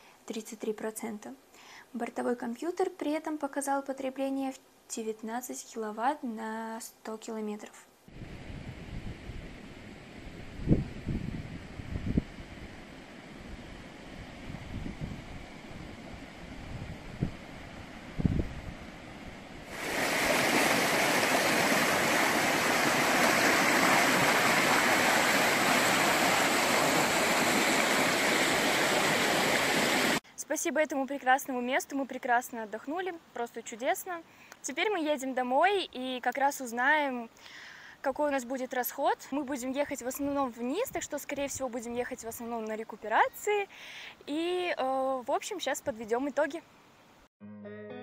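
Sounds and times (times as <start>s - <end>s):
stream rushing over rocks: 19.7s - 30.2s.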